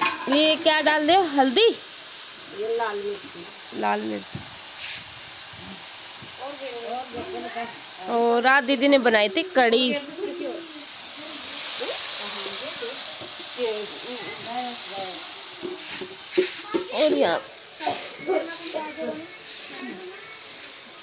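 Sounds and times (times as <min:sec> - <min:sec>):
potatoes sizzling in oil: 0:00.0 - 0:21.0
faint background voices: 0:09.3 - 0:21.0.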